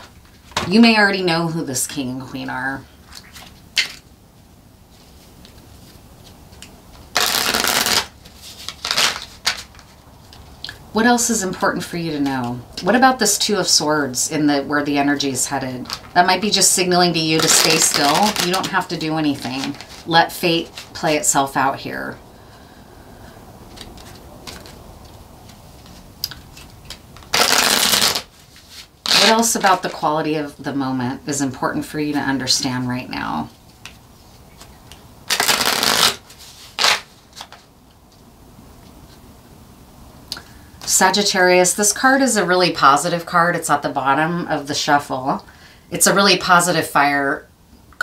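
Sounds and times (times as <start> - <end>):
cards being shuffled: 5.0 - 10.5, 17.3 - 21.0, 23.7 - 29.9, 33.7 - 37.7
cards shuffled on table: 23.7 - 29.4.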